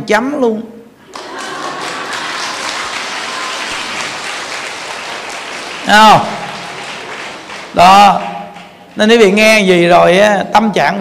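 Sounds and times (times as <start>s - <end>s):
audience applause: 1.0s - 9.5s.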